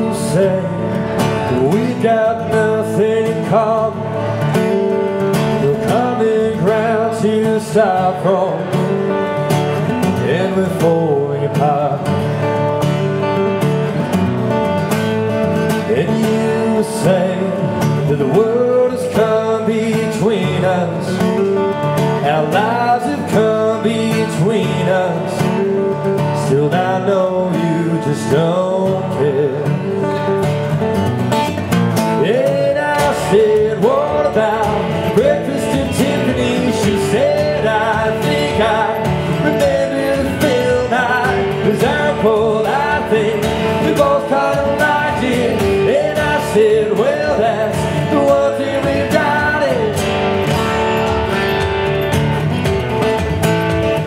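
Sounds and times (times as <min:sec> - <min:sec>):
man singing: 0:00.0 - 0:13.4, 0:15.7 - 0:30.4, 0:32.0 - 0:51.3
acoustic guitar strumming: 0:00.0 - 0:54.0.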